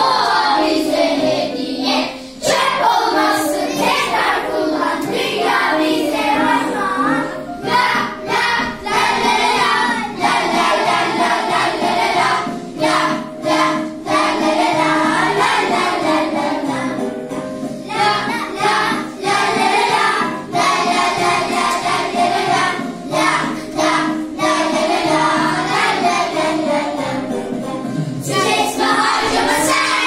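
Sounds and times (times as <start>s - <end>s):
children singing together: 0.0s - 30.0s.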